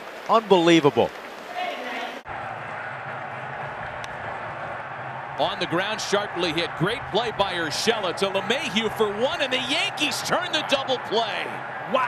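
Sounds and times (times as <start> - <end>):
baseball game ambient noise: 0.0 - 12.0.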